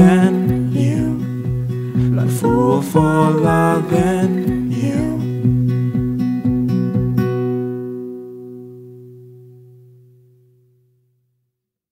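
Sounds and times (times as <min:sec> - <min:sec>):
acoustic guitar chord ringing: 0:00.0 - 0:11.1.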